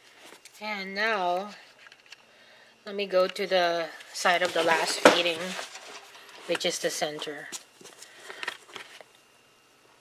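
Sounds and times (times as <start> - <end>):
shredded paper rustling: 4.2 - 6.8.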